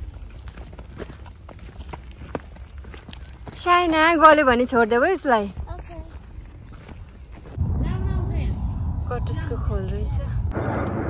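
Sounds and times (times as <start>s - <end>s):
footsteps on dirt path: 0.0s - 8.0s
loud low rumble: 7.5s - 11.0s.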